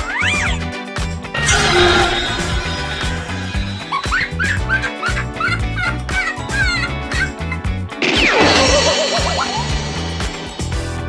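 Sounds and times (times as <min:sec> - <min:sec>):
background music with steady beat: 0:00.0 - 0:11.0
loud noisy burst: 0:01.4 - 0:04.9, 0:08.0 - 0:11.0.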